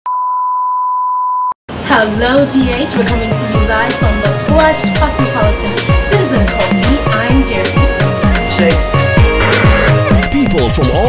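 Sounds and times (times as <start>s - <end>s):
steady high test tone beep: 0.1s - 1.5s
person speaking over music: 2.0s - 11.0s.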